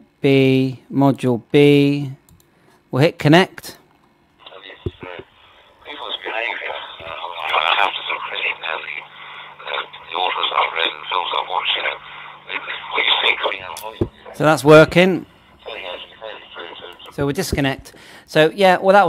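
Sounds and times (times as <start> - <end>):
low steady hum: 0.0 - 19.0
digital radio speech: 4.4 - 17.8.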